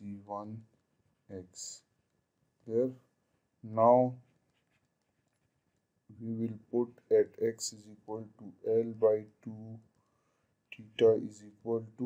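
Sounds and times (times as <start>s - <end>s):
man speaking: 0.0s - 0.7s, 1.3s - 1.9s, 2.6s - 4.3s, 6.1s - 9.9s, 10.7s - 12.0s
stylus scratching on tablet screen: 3.2s - 7.1s.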